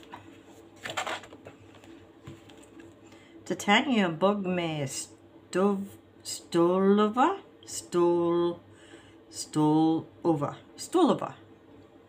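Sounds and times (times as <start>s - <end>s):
paper rustling: 0.0s - 2.9s.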